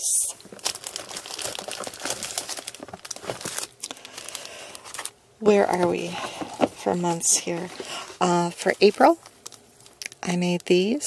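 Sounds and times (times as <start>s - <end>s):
cellophane bags crinkling: 0.2s - 11.0s.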